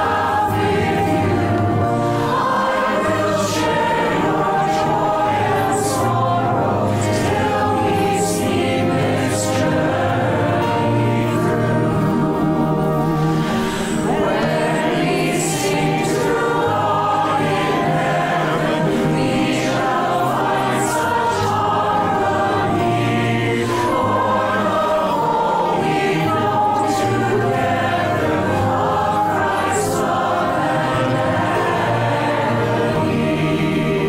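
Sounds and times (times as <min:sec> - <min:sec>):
choir singing: 0:00.0 - 0:34.0.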